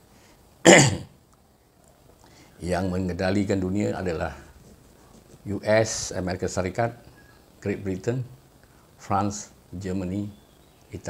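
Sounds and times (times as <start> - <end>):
man coughing: 0.6 - 1.1.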